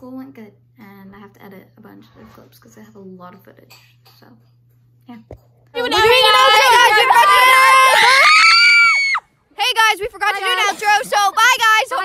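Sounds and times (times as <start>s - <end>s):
high-pitched talking: 5.8s - 8.0s
high-pitched scream: 5.9s - 9.2s.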